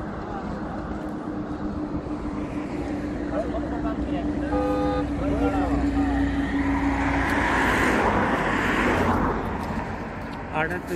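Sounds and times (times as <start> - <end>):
low engine hum: 0.0 - 10.9
vehicle passing on road: 0.0 - 10.9.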